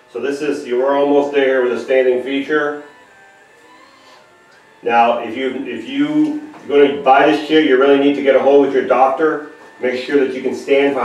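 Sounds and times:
man talking: 0.0s - 3.0s, 4.8s - 11.0s
electric actuator whine: 0.0s - 11.0s.

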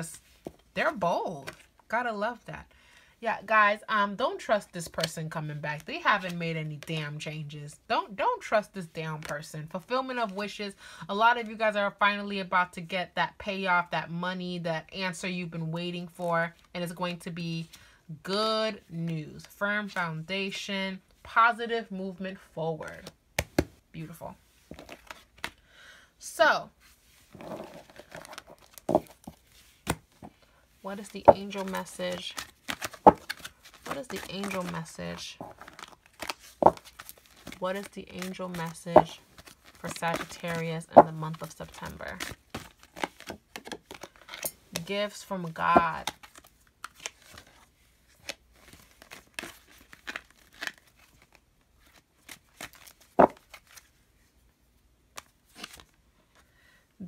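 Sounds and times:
cards rustling and sliding: 1.4s - 1.8s, 24.6s - 25.6s, 26.8s - 44.9s, 45.7s - 54.0s, 55.1s - 56.0s
cards tapping together: 23.0s - 23.8s, 31.1s - 34.9s, 35.6s - 39.5s, 52.6s - 53.8s.

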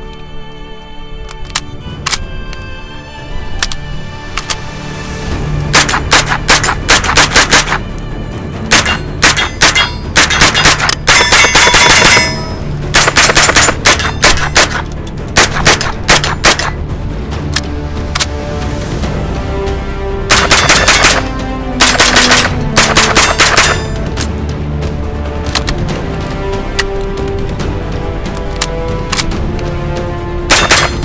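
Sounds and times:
background music: 0.0s - 31.0s
rapid gunshots: 5.7s - 7.8s, 8.7s - 16.8s, 20.3s - 24.0s, 30.5s - 31.0s.

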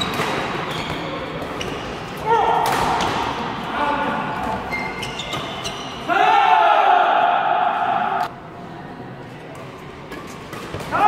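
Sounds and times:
high-pitched shoe squeal: 4.7s - 6.0s.

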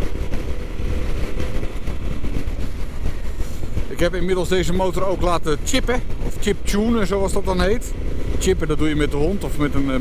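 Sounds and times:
motorcycle engine rumbling: 0.0s - 10.0s.

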